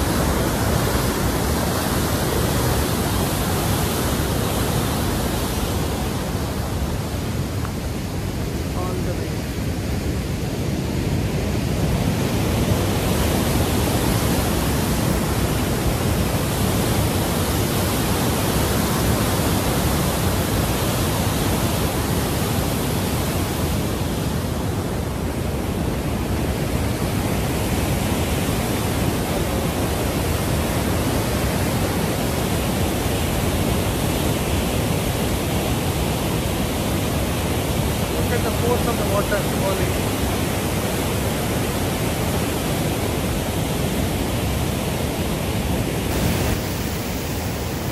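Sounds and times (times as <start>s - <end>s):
white-water rapids rushing: 0.0s - 47.9s.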